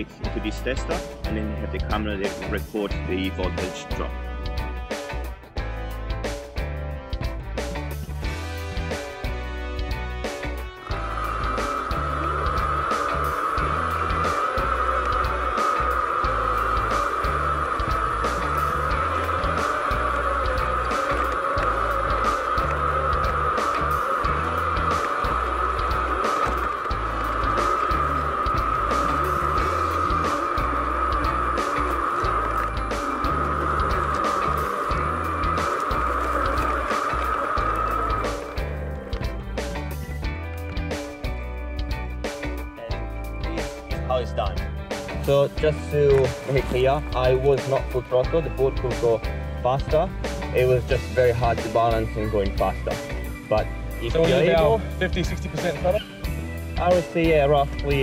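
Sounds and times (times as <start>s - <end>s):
background music with bass line: 0.0s - 58.0s
high electric motor whine: 8.2s - 44.0s, 44.6s - 58.0s.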